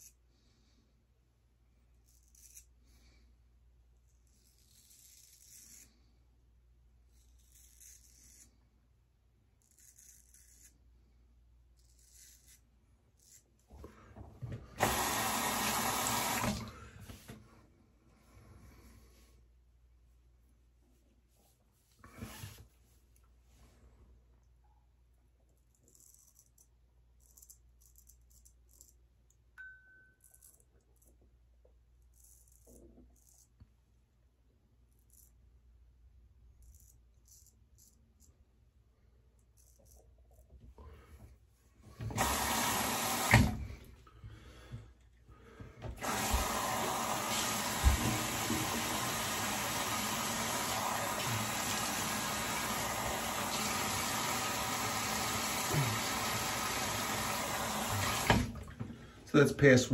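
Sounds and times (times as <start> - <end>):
razor scraping stubble: 2.0 - 2.8, 4.2 - 6.1, 7.1 - 8.7, 9.6 - 10.9, 11.7 - 13.7
tap water running into sink: 14.8 - 16.8, 42.1 - 43.6, 46.0 - 58.8.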